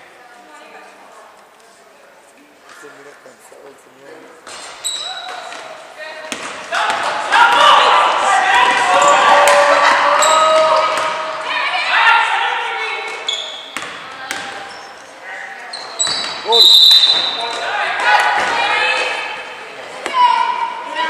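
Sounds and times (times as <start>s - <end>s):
sneakers squeaking: 4.4s - 7.6s, 10.1s - 11.6s, 12.9s - 20.8s
basketball bouncing: 6.3s - 7.1s, 13.8s - 14.6s
voices shouting: 6.7s - 13.3s.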